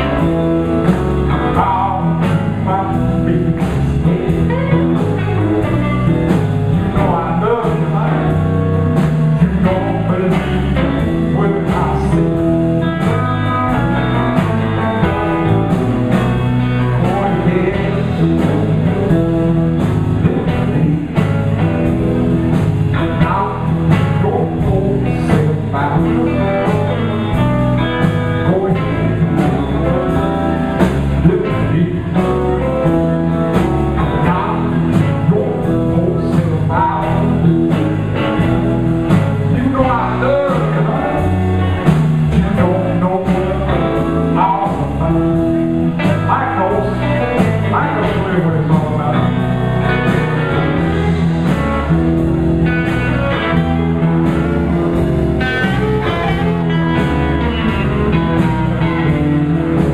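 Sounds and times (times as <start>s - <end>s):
electric bass: 0.0s - 59.9s
electric guitars: 0.0s - 59.9s
steady drum beat: 0.0s - 59.9s.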